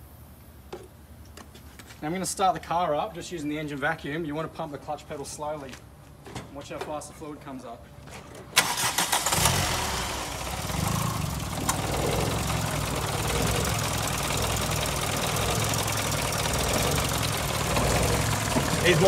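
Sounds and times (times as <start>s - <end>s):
car engine starting and idling: 8.5s - 19.0s.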